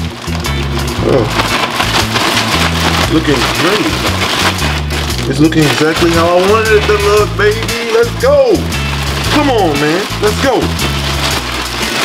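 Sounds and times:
background music with bass line: 0.0 - 12.0
plastic bag rustling: 0.0 - 12.0.

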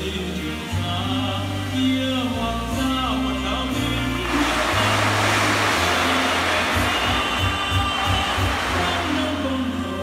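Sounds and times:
show music with deep bass: 2.8 - 10.0
fountain water jets spraying: 3.3 - 10.0.

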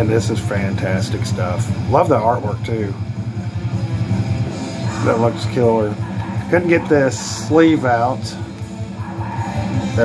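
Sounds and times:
metal music: 0.0 - 10.0.

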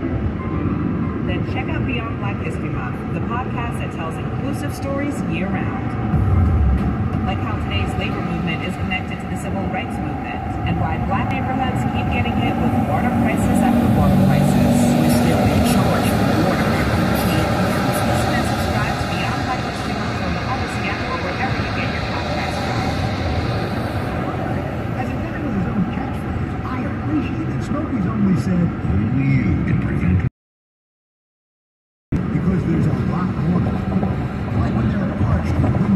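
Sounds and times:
road and engine noise: 0.0 - 30.3, 32.1 - 35.9
talk on car radio: 24.2 - 30.3.

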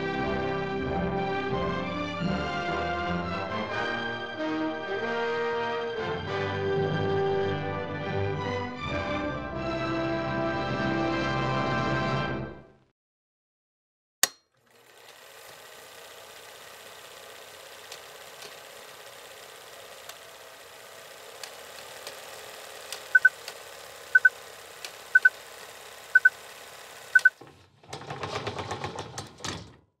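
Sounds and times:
sharp click: 14.2 - 14.5
film projector whirring rattle: 14.5 - 29.7
short double beeps: 23.2 - 23.4.

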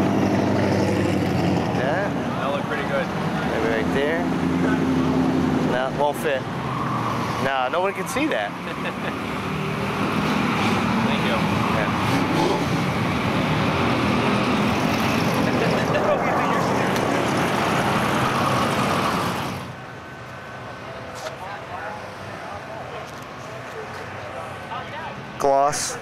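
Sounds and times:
people talking: 1.8 - 4.8, 5.7 - 6.4, 7.4 - 9.1, 11.0 - 12.6, 15.4 - 17.6
people laughing: 8.4 - 9.4, 15.4 - 16.9.

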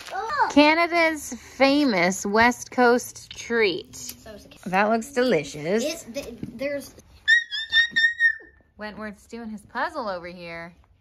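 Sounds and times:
toy whistle toots: 7.2 - 8.5.

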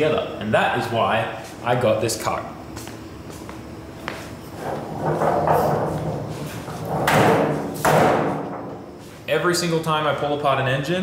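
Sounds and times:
cart rolling and clattering: 4.5 - 7.6.

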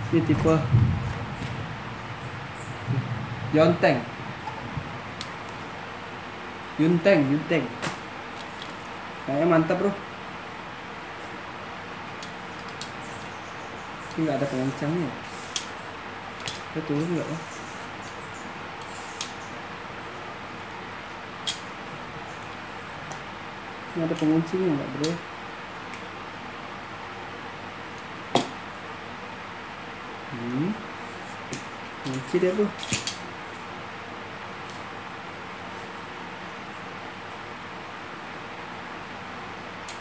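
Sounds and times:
background hum and hiss: 0.0 - 40.0.

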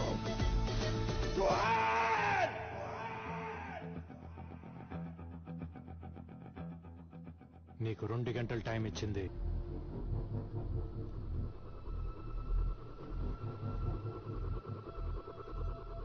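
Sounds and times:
film score music: 0.0 - 16.0.

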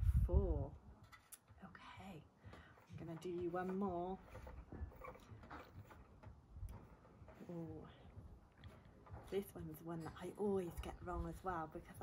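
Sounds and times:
low rumble: 0.0 - 0.8.

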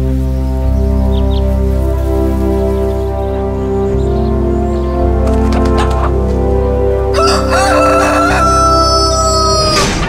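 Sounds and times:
rooster crowing: 7.1 - 9.9.

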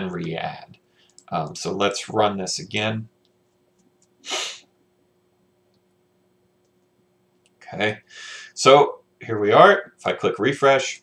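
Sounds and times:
faint steady hum: 0.0 - 11.0
man's sharp burst of breath: 4.2 - 4.7.

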